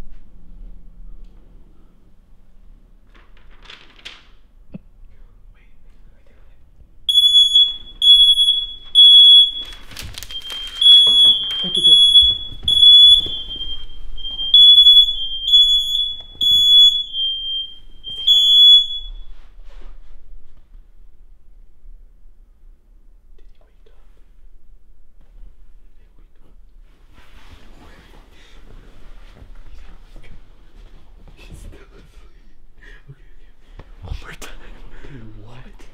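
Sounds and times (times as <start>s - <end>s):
smoke alarm beeping: 7.1s - 19.5s.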